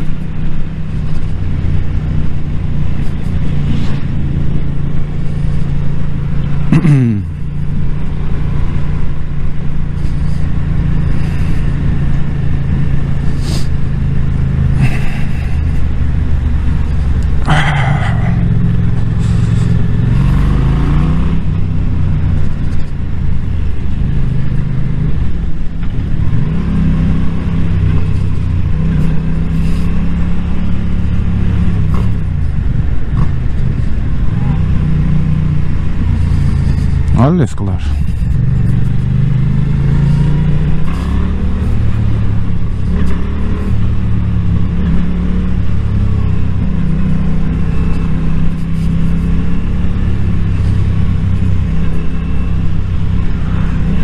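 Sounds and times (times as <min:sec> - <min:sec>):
motorcycle engine revving: 0:00.0 - 0:54.0
wind rumble on microphone: 0:07.4 - 0:52.1.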